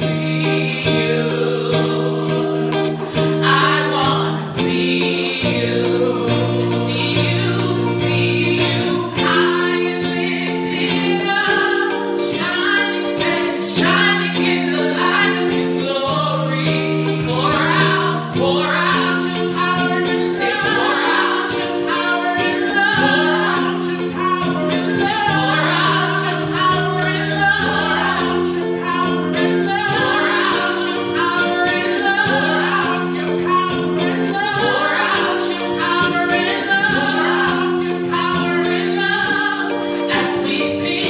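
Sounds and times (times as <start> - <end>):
women singing gospel: 0.0 - 41.0.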